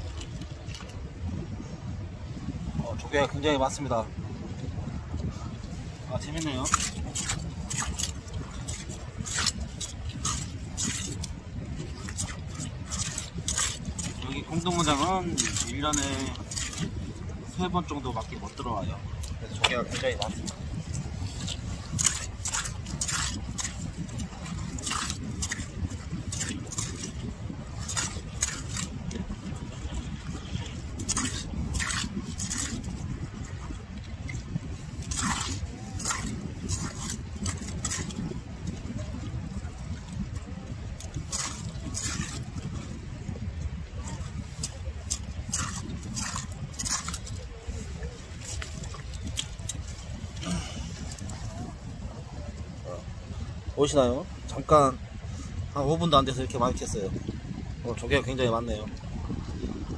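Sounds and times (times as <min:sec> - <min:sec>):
steady low rumble: 0:00.0 - 0:58.1
rake scraping shells in mud: 0:06.4 - 0:17.0, 0:19.2 - 0:29.2, 0:30.2 - 0:33.0, 0:34.9 - 0:38.4, 0:41.0 - 0:42.7, 0:44.1 - 0:47.5.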